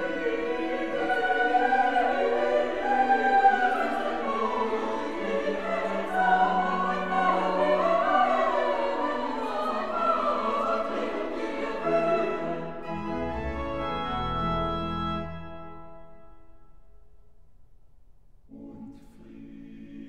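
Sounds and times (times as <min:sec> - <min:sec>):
pipe organ: 0:00.0 - 0:16.5
choir singing sustained chords: 0:00.0 - 0:17.1, 0:18.5 - 0:20.0.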